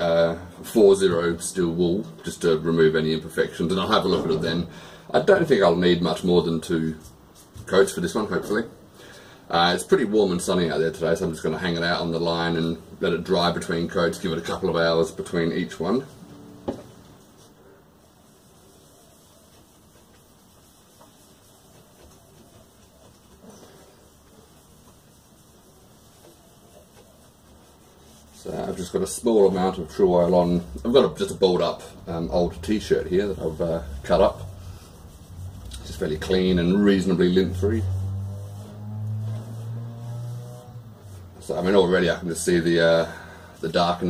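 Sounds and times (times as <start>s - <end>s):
cloth rubbing on wood: 3.1s - 8.7s, 9.8s - 44.0s.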